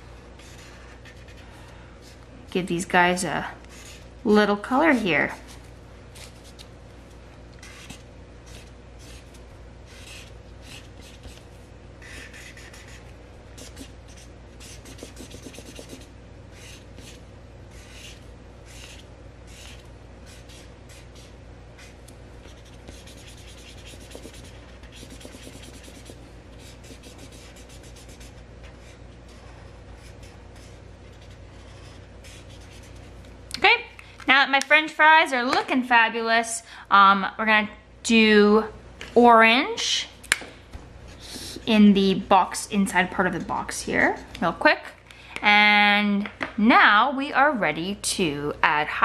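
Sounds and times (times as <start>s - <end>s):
faint steady hum: 0.0s - 49.0s
marker scribbling on paper: 0.4s - 1.4s, 3.7s - 4.1s, 7.6s - 11.4s, 12.0s - 33.1s.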